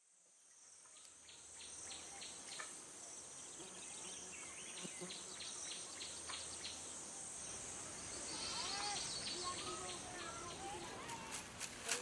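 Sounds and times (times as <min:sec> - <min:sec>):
insect chorus: 0:00.0 - 0:12.0
bird chirps: 0:08.0 - 0:11.2.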